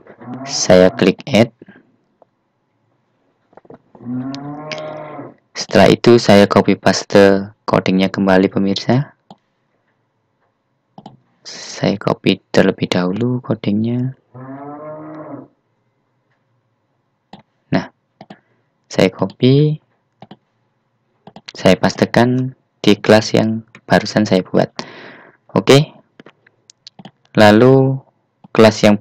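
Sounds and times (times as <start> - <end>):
man's drawn-out hesitation sound: 0.0 - 1.8
man saying ehh: 0.4 - 1.5
faint clicks: 19.2 - 20.5, 26.2 - 27.4.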